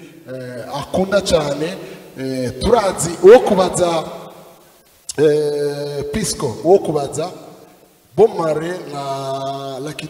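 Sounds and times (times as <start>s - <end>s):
man speaking into a microphone: 0.0s - 4.4s, 5.0s - 10.0s.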